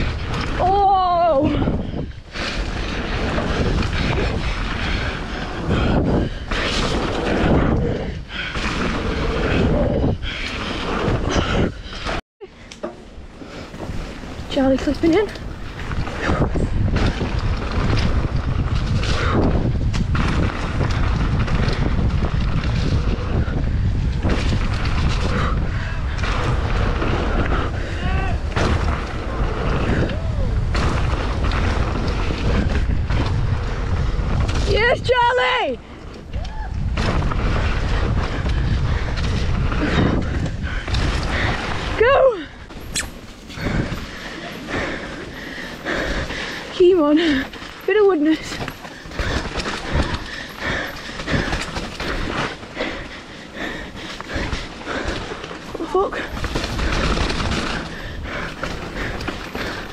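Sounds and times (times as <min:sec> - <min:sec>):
bike tyres rumbling on gravel: 0:00.0 - 0:59.9
wind rushing over microphone: 0:00.0 - 0:59.9.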